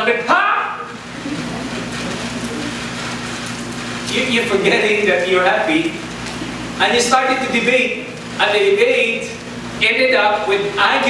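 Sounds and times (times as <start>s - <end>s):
steady hiss: 0.7s - 11.0s.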